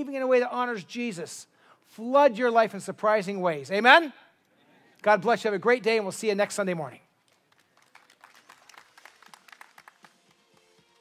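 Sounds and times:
faint audience clapping: 0:07.1 - 0:11.0.

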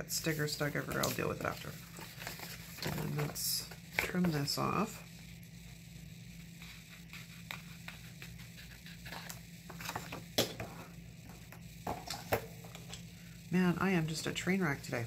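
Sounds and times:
steady low hum: 0:00.0 - 0:15.0
paper pages rustling: 0:00.3 - 0:04.4, 0:06.6 - 0:10.3.

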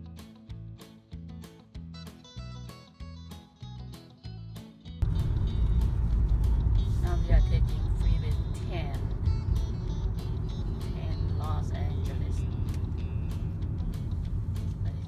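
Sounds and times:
car cabin road rumble: 0:05.0 - 0:15.0.

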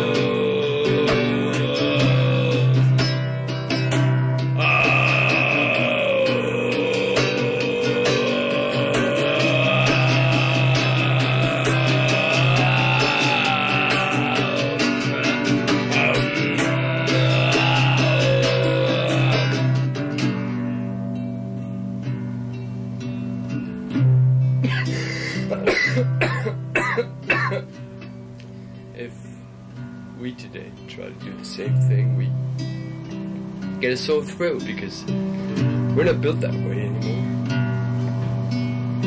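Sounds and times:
low held drone: 0:00.0 - 0:03.3, 0:04.6 - 0:20.1
guitar strokes: 0:00.0 - 0:26.2, 0:27.6 - 0:39.0
man coughing: 0:24.6 - 0:27.8.

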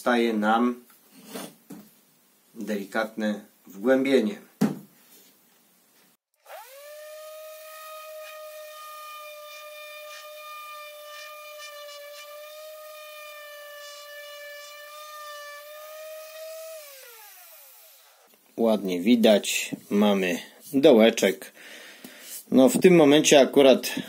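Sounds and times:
orbital sander whining: 0:06.4 - 0:18.3.

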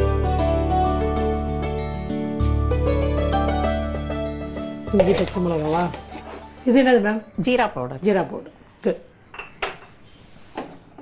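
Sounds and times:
kitchenware knocks and clinks: 0:09.3 - 0:10.0.

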